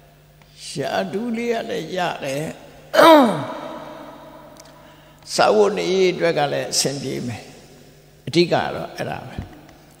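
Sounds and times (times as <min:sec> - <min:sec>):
faint steady hum: 0:00.0 - 0:10.0
man speaking into a microphone: 0:00.5 - 0:03.6, 0:05.2 - 0:09.6.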